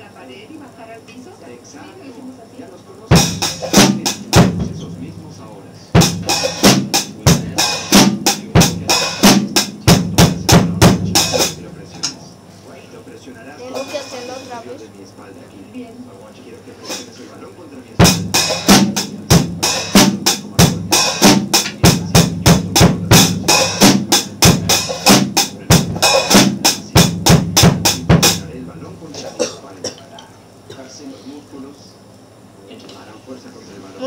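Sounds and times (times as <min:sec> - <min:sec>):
drum kit steady beat: 0:03.1 - 0:12.9, 0:13.6 - 0:14.8, 0:16.7 - 0:29.6.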